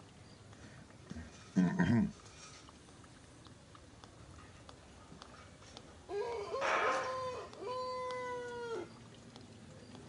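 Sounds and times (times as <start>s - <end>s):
rooster crowing: 6.1s - 8.9s.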